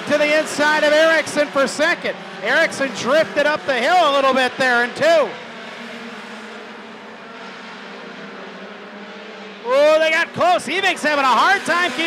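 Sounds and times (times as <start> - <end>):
stock car engines racing: 0.0 - 12.0.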